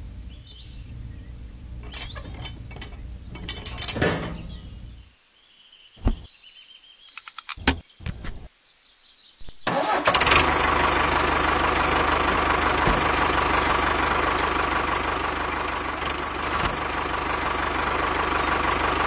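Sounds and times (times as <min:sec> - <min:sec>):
tractor engine starting and idling: 0:00.0 - 0:05.0, 0:09.6 - 0:19.0
small clicks: 0:07.1 - 0:08.5.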